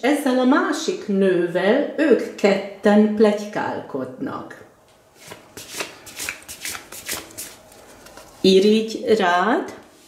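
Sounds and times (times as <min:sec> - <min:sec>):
cards being shuffled: 0:05.2 - 0:08.4.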